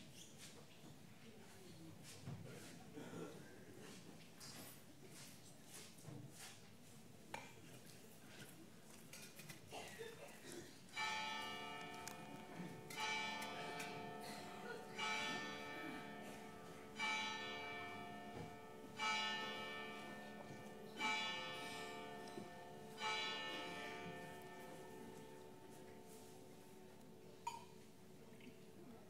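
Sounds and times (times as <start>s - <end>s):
large church bell ringing: 10.9s - 28.1s.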